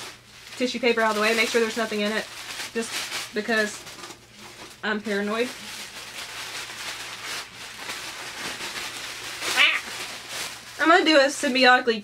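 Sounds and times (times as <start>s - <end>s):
tissue paper crinkling: 0.0s - 12.0s.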